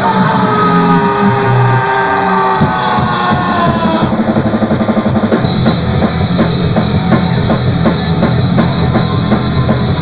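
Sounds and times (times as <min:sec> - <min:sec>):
bass guitar: 0:00.0 - 0:10.0
fast drum hits: 0:02.4 - 0:10.0.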